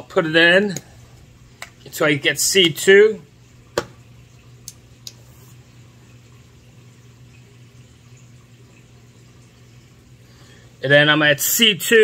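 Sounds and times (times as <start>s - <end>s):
low hum and faint hiss: 0.0s - 12.0s
man speaking: 1.8s - 3.3s.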